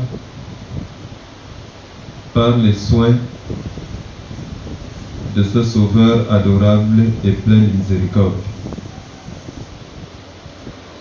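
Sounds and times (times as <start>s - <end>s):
soft even hiss: 0.0s - 11.0s.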